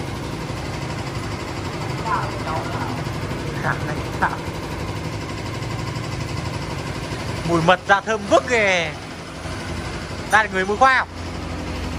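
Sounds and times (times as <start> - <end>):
low mechanical hum: 0.0 - 11.9.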